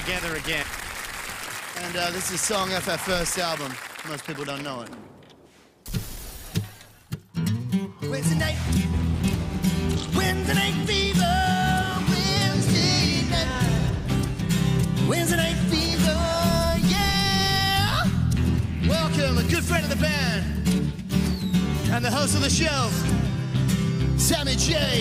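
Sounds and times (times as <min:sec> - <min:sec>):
guitar strums: 0:05.9 - 0:25.0
band playing: 0:07.4 - 0:25.0
person singing: 0:10.0 - 0:14.3, 0:15.0 - 0:18.2.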